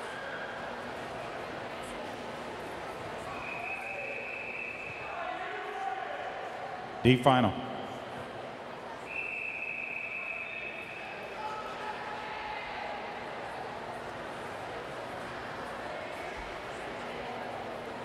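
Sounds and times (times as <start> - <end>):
crowd murmur in pool hall: 0.0 - 18.0
referee's whistle long blast: 3.3 - 5.2, 9.1 - 11.2.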